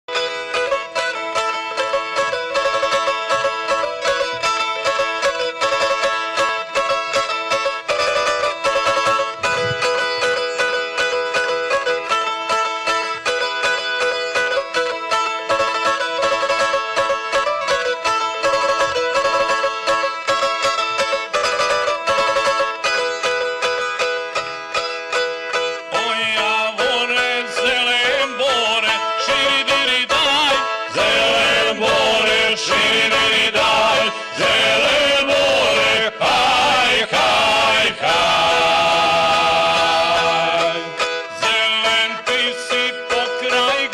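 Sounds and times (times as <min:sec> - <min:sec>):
plucked string instrument: 0:00.1 - 0:43.9
men singing: 0:25.9 - 0:43.9.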